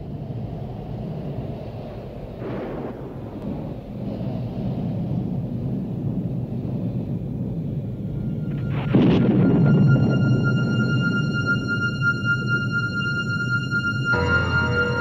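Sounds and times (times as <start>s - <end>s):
low rumble of thunder: 1.9s - 12.6s.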